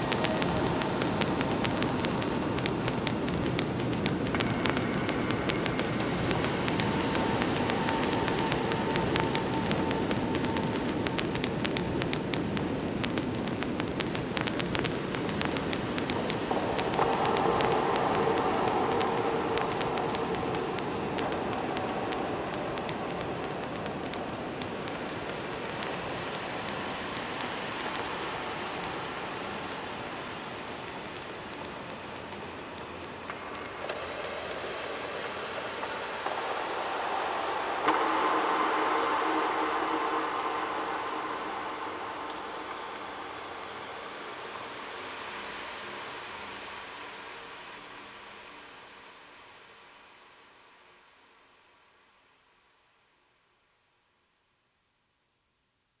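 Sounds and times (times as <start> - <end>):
hissing noise texture: 0.0 - 52.4
faint sustained tones: 0.0 - 54.2.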